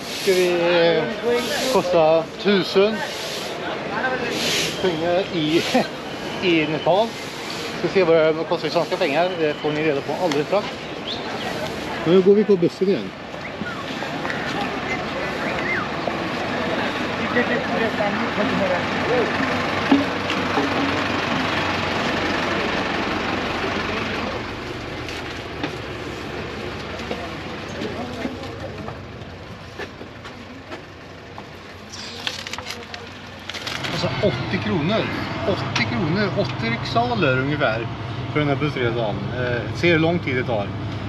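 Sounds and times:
crowd and vehicle noise: 0:00.0 - 0:41.0
people talking: 0:00.2 - 0:21.5, 0:26.5 - 0:29.0, 0:33.9 - 0:40.7
knocks and clicks inside bus: 0:19.8 - 0:22.1.

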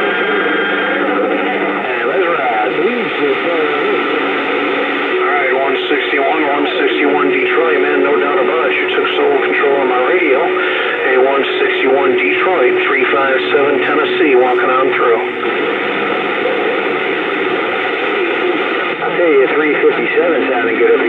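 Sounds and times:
garbled radio voices: 0:00.0 - 0:21.0
radio static: 0:00.0 - 0:21.0.

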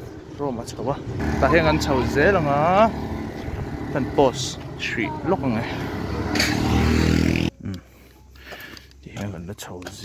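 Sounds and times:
vehicle engine rumble: 0:00.0 - 0:09.1
street noise: 0:00.0 - 0:10.0.

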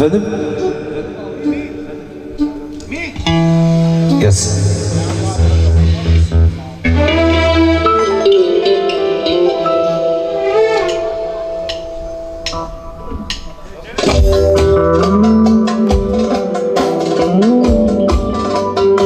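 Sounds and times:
keyboard lead with bending notes: 0:00.0 - 0:19.0
live band playing: 0:00.0 - 0:19.0.

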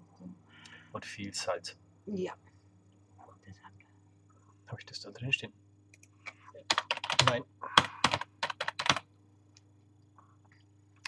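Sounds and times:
person speaking a word: 0:01.0 - 0:01.7, 0:07.2 - 0:08.1
keyboard keystroke clicks: 0:08.0 - 0:09.0.

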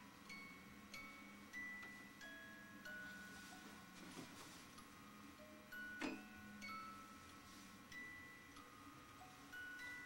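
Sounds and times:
chime-like lullaby notes: 0:00.0 - 0:10.0.

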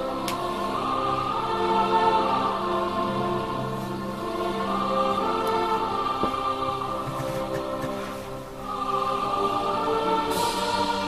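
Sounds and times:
choir singing long notes: 0:00.0 - 0:11.0.

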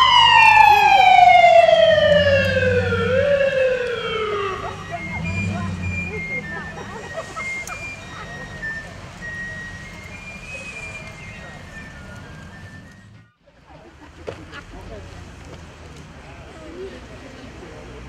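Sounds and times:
siren winding down: 0:00.0 - 0:10.3.

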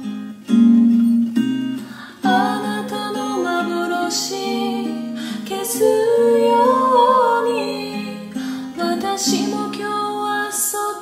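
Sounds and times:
strummed acoustic guitar: 0:00.0 - 0:10.6
women singing wordless harmony: 0:02.0 - 0:11.0.

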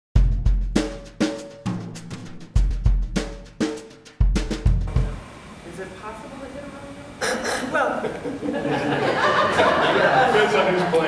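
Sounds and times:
kick drum thumps: 0:04.2 - 0:05.2.

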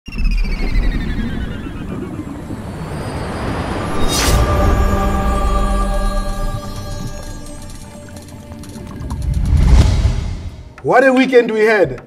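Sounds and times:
low rumble: 0:08.9 - 0:10.8.

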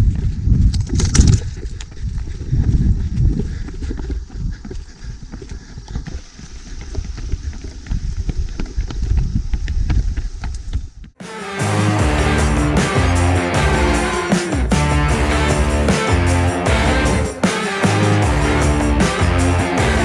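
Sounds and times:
running footsteps on dirt and stone: 0:00.0 - 0:11.2
wind rumbling on microphone: 0:00.0 - 0:11.2.

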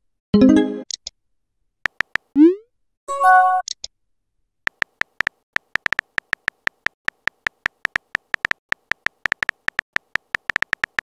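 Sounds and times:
keyboard tap ticks: 0:01.9 - 0:02.3, 0:04.7 - 0:11.0.

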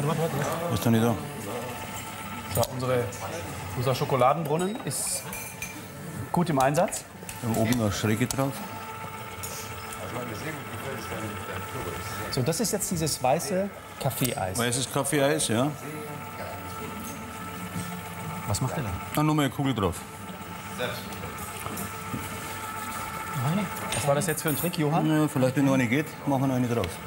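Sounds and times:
small electric motor humming: 0:00.0 - 0:27.0.

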